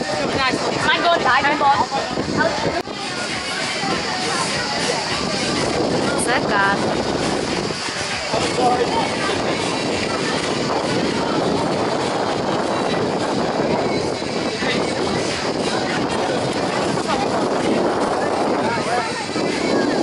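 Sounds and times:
people chattering: 0.0s - 20.0s.

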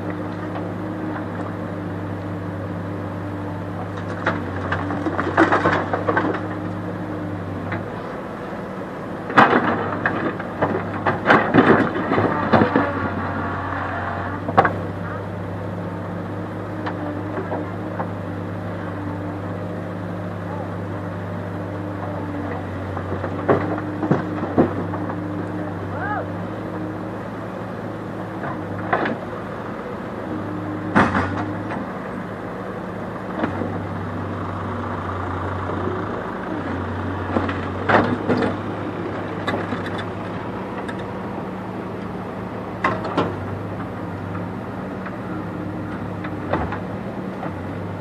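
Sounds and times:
diesel engine running: 0.0s - 48.0s.

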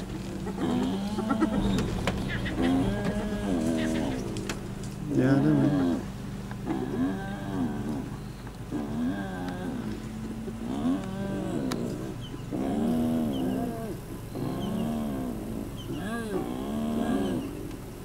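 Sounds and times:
hyena moaning: 0.0s - 17.7s.

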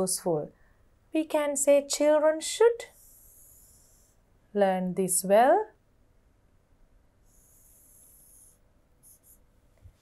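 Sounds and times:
stylus scratching on touchscreen: 7.8s - 9.4s.

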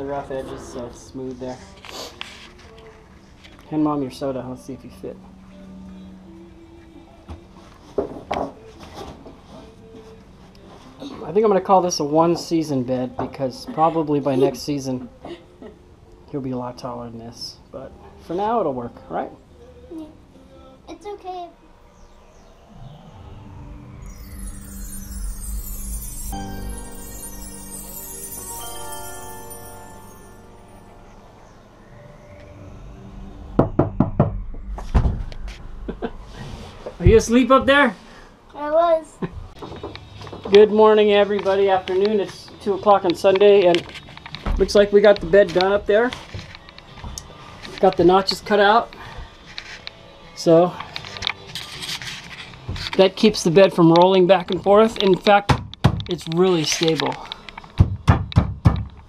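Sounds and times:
background music: 19.0s - 55.4s.

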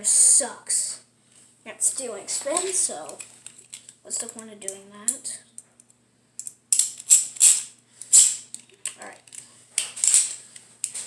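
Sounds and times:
plastic parts rattling and clicking: 6.4s - 11.0s.

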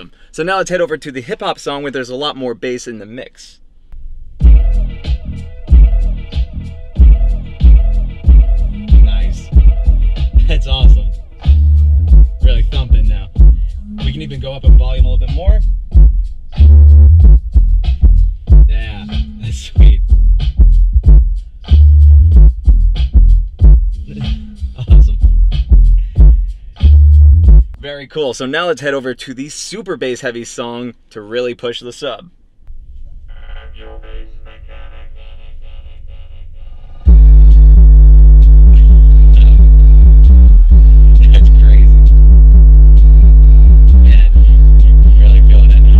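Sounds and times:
deep kick drums: 4.4s - 27.8s, 37.1s - 45.9s
hip-hop song through car stereo: 4.4s - 27.8s, 37.1s - 45.9s
loud bass note: 4.4s - 27.8s, 32.7s - 45.9s
person singing: 12.5s - 15.0s, 18.8s - 19.8s, 24.0s - 25.2s, 43.0s - 45.9s.

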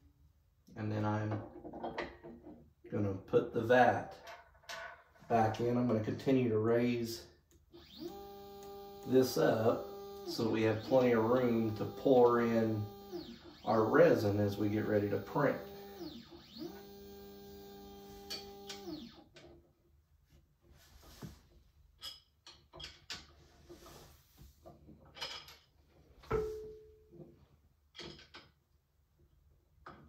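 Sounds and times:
stepper motor whine: 7.8s - 19.2s.

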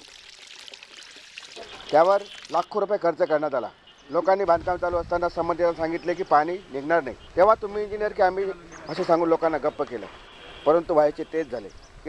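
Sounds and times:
water splashing into a pool: 0.0s - 2.8s.

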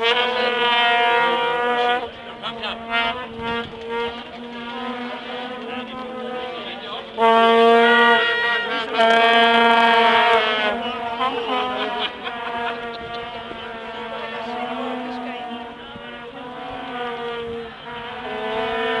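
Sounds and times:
vuvuzelas blaring: 0.0s - 19.0s.

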